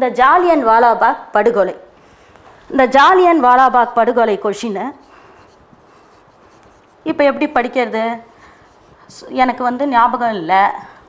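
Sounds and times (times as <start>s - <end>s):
marker pen writing on whiteboard: 4.7s - 10.4s.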